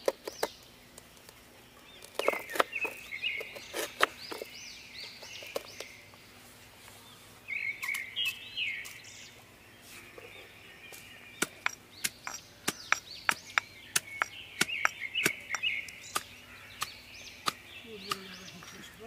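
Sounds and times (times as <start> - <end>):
pestle pounding in stone mortar: 11.4 - 18.4.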